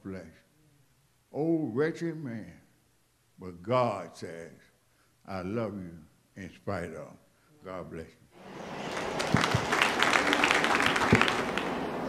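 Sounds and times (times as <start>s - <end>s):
congregation clapping: 8.4s - 12.0s.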